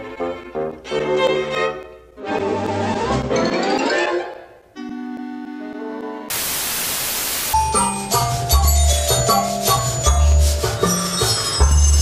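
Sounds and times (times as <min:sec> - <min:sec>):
tv static hiss: 0:06.3 - 0:07.6.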